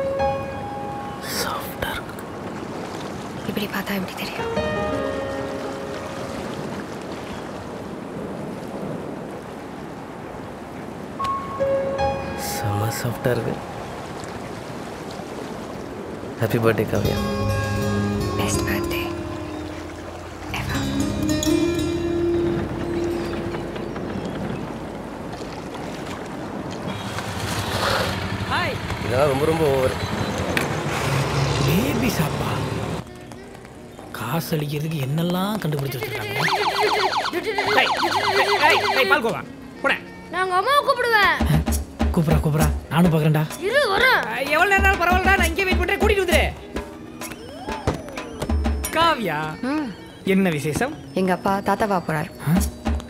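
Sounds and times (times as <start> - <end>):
wind at the shore: 0.0 - 41.5
sea waves: 0.0 - 53.0
person whispering: 1.2 - 2.2.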